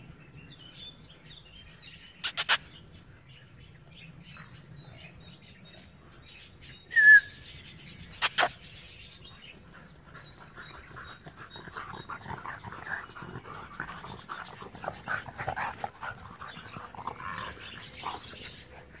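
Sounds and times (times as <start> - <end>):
dogs breathy play noises: 8.2 - 19.0.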